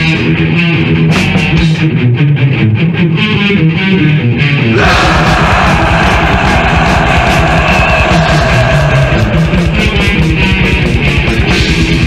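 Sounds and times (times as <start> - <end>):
distorted electric guitar riff: 0.0 - 12.0
rapid driving drumming: 4.8 - 12.0.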